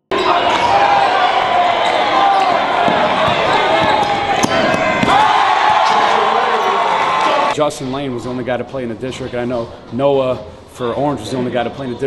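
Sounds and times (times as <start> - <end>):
crowd voices and shouting: 0.0 - 12.0
basketball bouncing on wooden court: 2.3 - 6.0.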